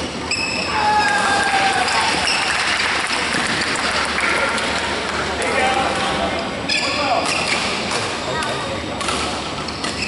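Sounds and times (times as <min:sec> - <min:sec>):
spectators applauding: 0:01.4 - 0:05.1.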